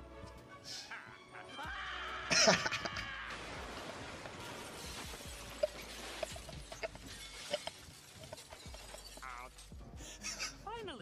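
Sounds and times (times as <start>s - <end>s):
glass shards tinkling: 5.0s - 9.8s.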